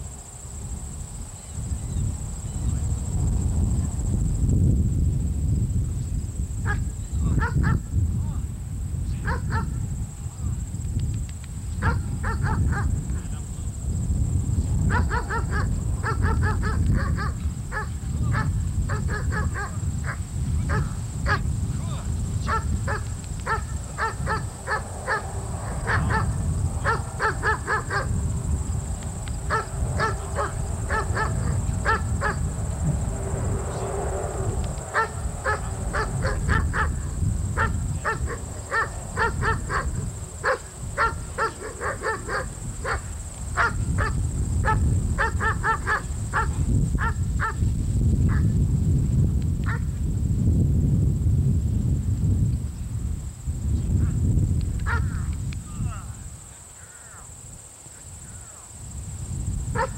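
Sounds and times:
steady low rumble: 0.0 - 56.2
dog barking: 7.4 - 7.8, 9.2 - 9.8, 11.8 - 12.9, 14.9 - 21.4, 22.5 - 28.1, 29.5 - 32.4, 34.9 - 37.0, 37.6 - 47.6.

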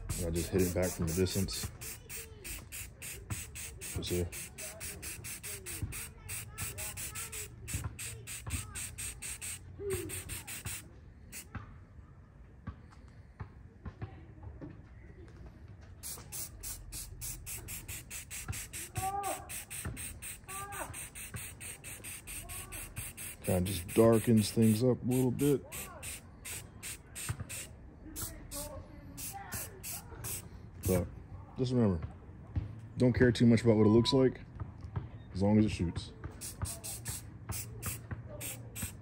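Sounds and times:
spray paint can hissing: 0.0 - 11.5, 16.0 - 31.0, 36.4 - 39.0.

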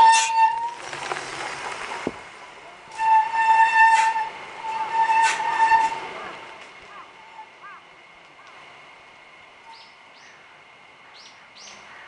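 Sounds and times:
bike brakes squealing: 0.0 - 0.8, 2.9 - 6.0.

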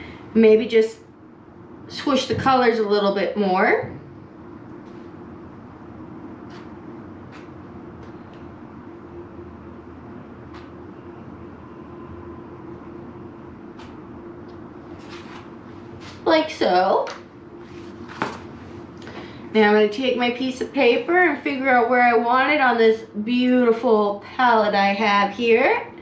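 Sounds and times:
low background hum: 0.0 - 26.0.

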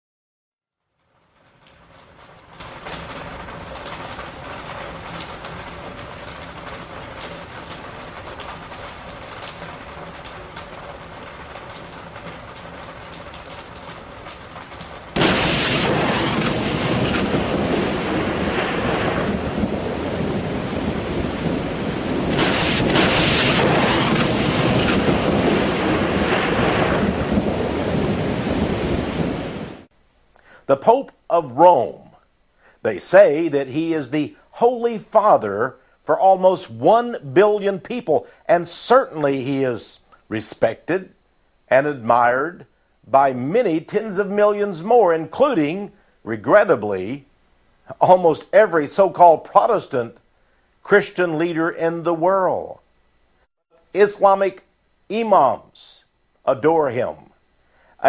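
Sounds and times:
steady rain: 0.8 - 58.0
thunder rumbling: 1.4 - 29.9.

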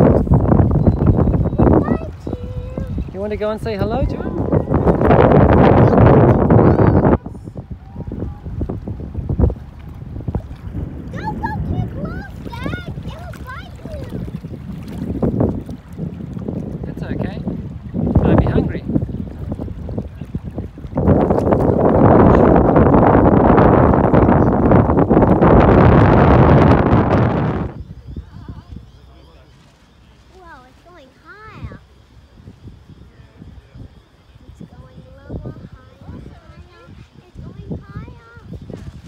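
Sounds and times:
small waves lapping: 0.0 - 39.0
wind on microphone: 0.0 - 39.0.

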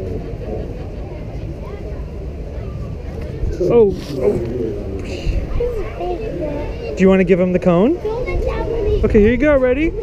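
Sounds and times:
indistinct voices: 0.0 - 7.0.

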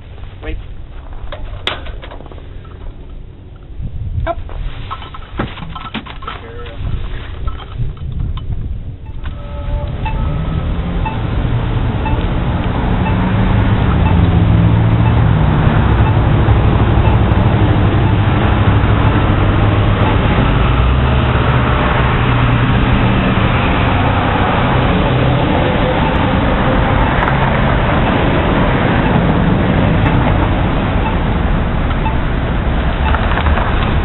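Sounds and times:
low engine rumble: 0.0 - 34.0
road traffic: 0.0 - 34.0.

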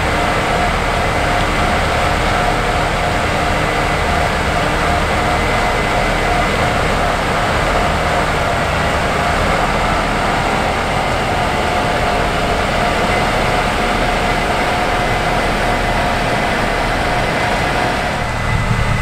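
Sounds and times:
combine harvester rumbling and whining: 0.0 - 19.0.

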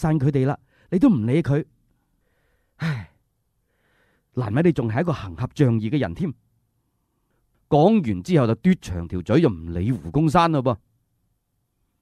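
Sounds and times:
faint breaths: 1.9 - 4.4
man sighing: 2.8 - 3.2.

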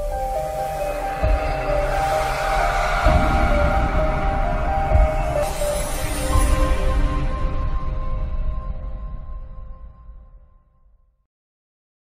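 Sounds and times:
synthesizer intro music: 0.0 - 10.2
low rumble: 0.0 - 10.6.

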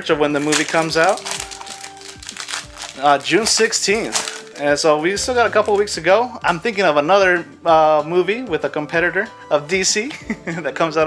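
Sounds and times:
quiet background music: 0.0 - 11.0
foil pack crinkling: 0.3 - 5.0.

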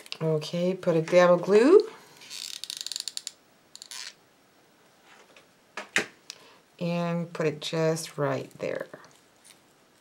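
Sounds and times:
soft rustle: 8.9 - 10.0.

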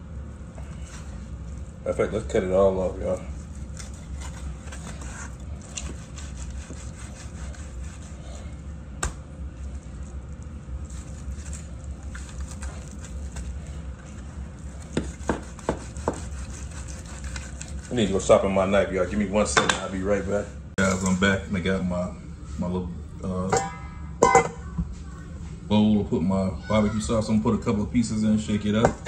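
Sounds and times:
steady low hum: 0.0 - 29.0
knife sawing through ribs: 3.0 - 8.6, 10.8 - 18.2.

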